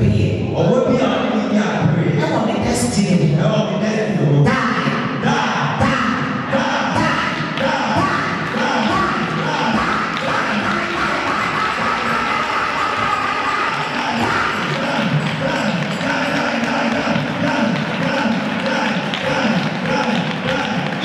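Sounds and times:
amplified voices: 0.0s - 21.0s.

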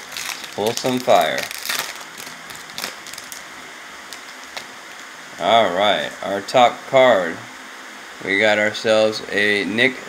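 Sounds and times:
foil wrapper rustling: 0.0s - 3.5s, 4.1s - 5.1s.

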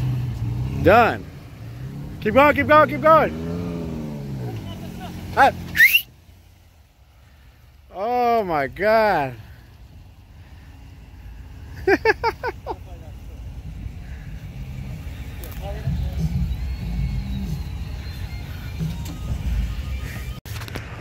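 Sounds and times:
pickup engine rumbling under load: 0.0s - 21.0s.

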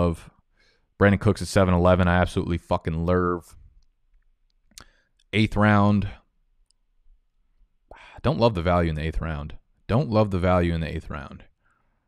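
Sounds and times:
man speaking: 0.0s - 0.3s, 1.0s - 3.6s, 5.3s - 6.3s, 8.0s - 11.5s.

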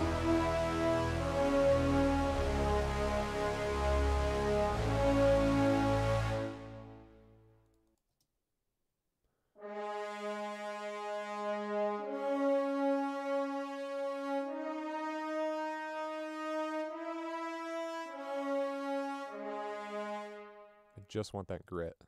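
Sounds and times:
french horn section playing long notes: 0.0s - 7.5s, 9.6s - 21.0s.

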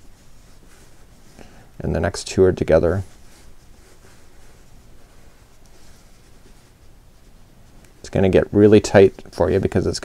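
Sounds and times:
crochet hook rustling yarn: 0.0s - 10.0s.

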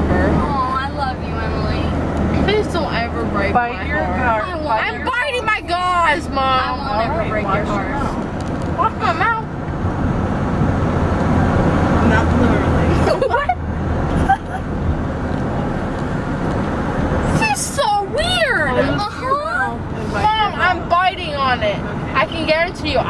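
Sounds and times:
car cabin road noise: 0.0s - 23.0s.

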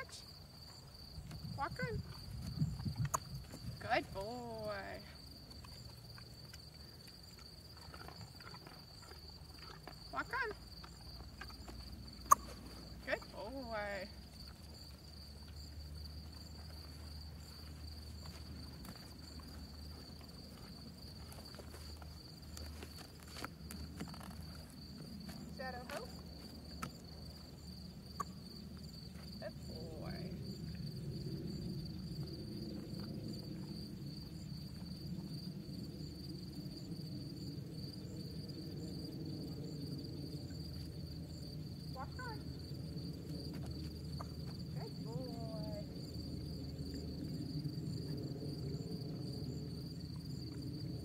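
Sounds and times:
insects trilling: 0.0s - 51.0s.

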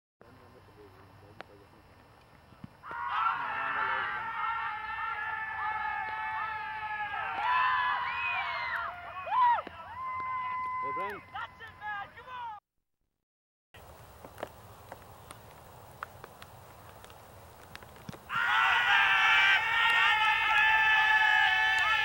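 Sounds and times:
fielders shouting together: 2.8s - 10.0s, 18.3s - 22.0s.

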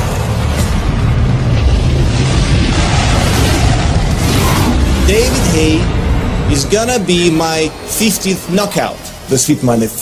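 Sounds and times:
deep rumbling drone: 0.0s - 9.3s.

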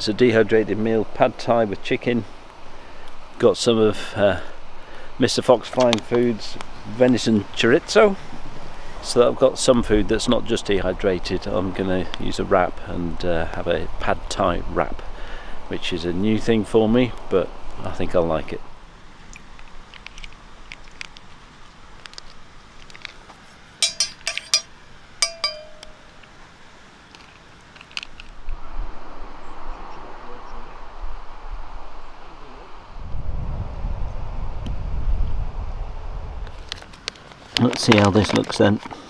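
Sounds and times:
metal clinking on enamel mug: 23.8s - 26.1s
wind on microphone: 28.4s - 36.7s.

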